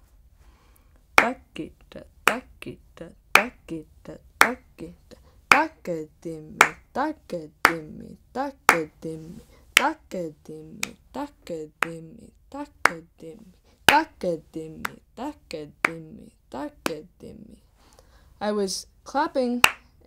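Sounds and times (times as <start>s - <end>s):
woman reciting drum syllables: 1.1s - 17.7s, 18.4s - 20.0s
sharp hand clap: 1.2s - 1.4s, 3.4s - 3.6s, 4.4s - 4.7s, 5.5s - 5.8s, 6.6s - 6.9s, 9.8s - 10.0s, 19.6s - 19.9s.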